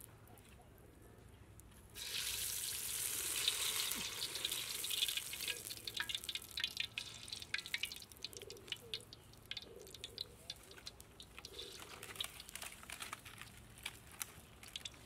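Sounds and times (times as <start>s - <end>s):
dough sizzling in hot oil: 2.0s - 12.4s, 14.6s - 15.0s
oil crackling and popping: 2.0s - 15.0s.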